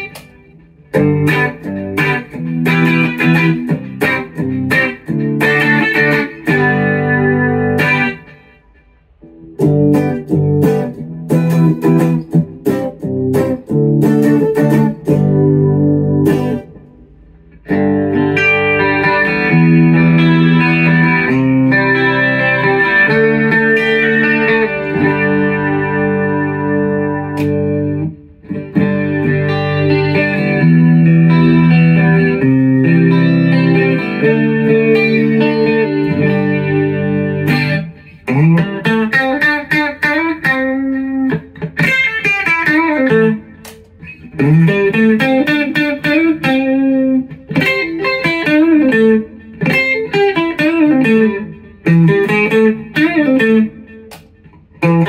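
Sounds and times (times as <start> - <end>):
electric guitar playing: 0.0 - 55.0.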